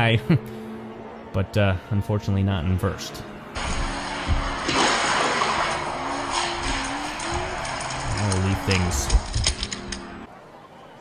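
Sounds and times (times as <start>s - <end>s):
toy car wheels rattling on track: 6.4s - 10.0s.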